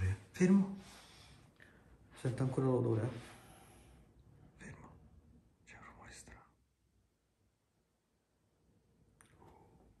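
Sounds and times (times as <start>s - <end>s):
faint whisper: 2.1s - 6.8s.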